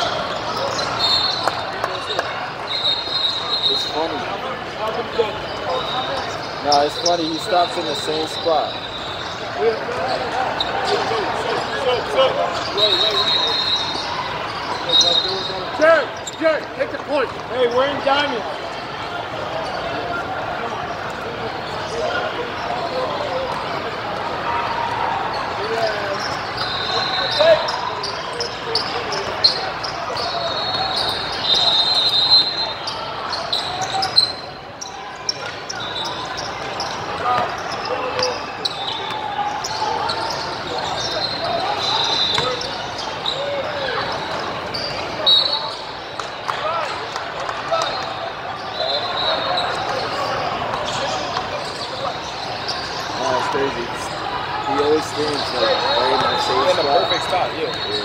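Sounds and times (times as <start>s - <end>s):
sneaker squeaks: 0.0s - 18.8s, 19.4s - 20.1s, 20.8s - 58.0s.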